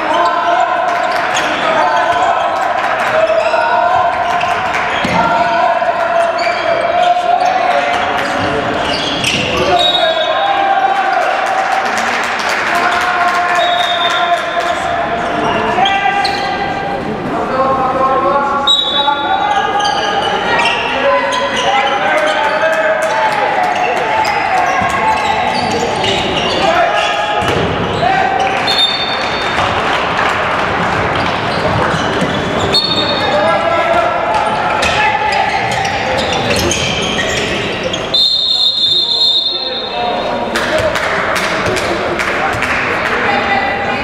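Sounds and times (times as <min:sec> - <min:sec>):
ball bouncing on court floor: 0:05.0 - 0:05.3, 0:27.4 - 0:27.8.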